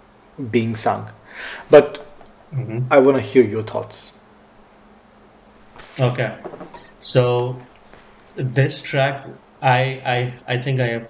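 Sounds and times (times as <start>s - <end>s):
faint steady hum: 0.0s - 11.0s
short hiss: 5.7s - 6.8s.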